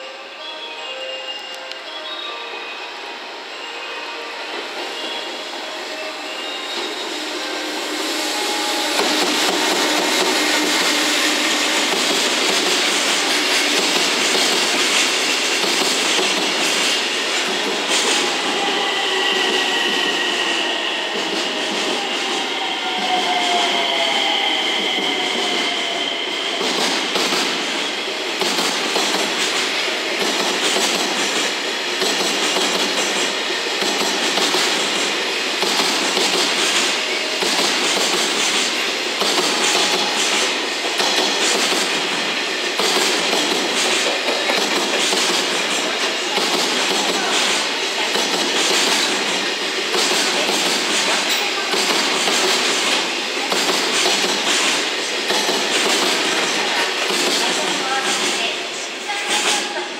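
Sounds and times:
electric train whine: 0.0s - 59.9s
freight train wheels clattering: 6.6s - 58.5s.

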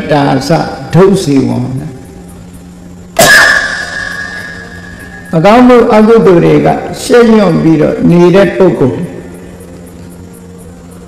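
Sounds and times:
steady ringing tone: 0.0s - 11.0s
sudden loud onset: 3.2s - 5.4s.

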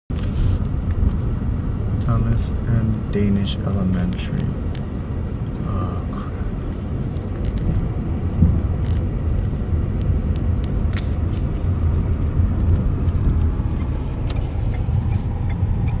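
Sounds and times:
car cabin rumble: 0.1s - 16.0s.

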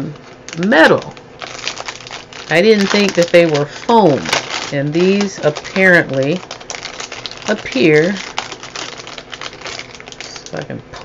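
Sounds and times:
plastic packaging crinkling: 0.0s - 10.8s.

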